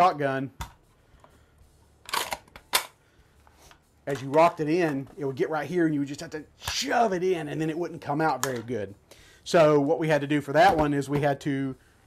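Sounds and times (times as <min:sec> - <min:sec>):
gun handling clatter: 0:02.0 - 0:03.0.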